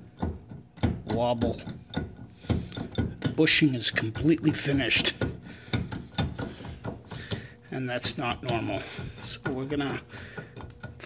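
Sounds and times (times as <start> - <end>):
suspension axle knocking and clicking: 0.0 - 11.0.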